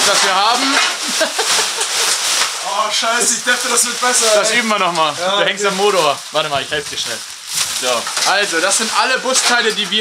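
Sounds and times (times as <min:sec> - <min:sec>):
tarpaulin rustling and crinkling: 0:00.0 - 0:10.0
people laughing: 0:00.6 - 0:02.3.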